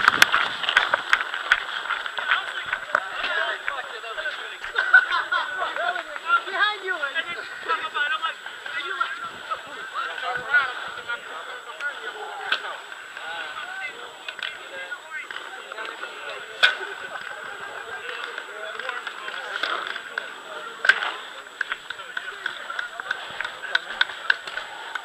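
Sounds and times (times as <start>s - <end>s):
people talking indistinctly: 1.2s - 25.0s.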